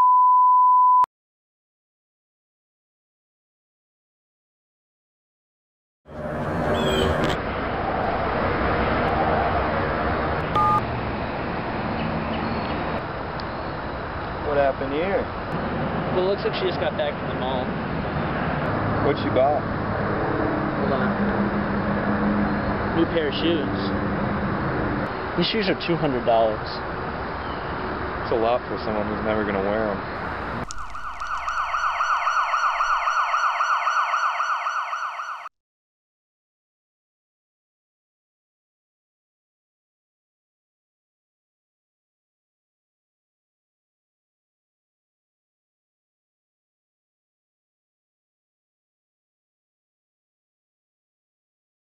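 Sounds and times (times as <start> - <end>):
siren yelping: 6.1 - 7.4, 10.6 - 10.8, 30.2 - 35.5
phone keypad beep: 10.6 - 10.8.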